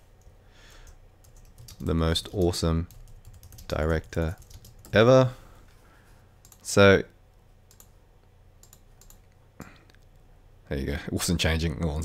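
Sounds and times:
computer mouse clicks: 6.4 - 6.7, 7.7 - 8.0, 8.6 - 10.2.

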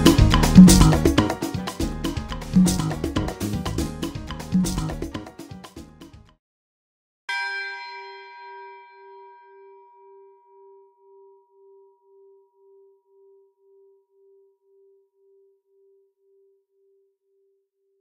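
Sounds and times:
bell ringing out: 7.3 - 11.5.

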